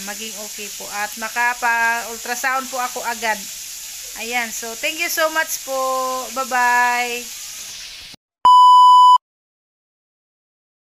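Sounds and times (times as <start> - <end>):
steady electronic beep: 8.5 - 9.2.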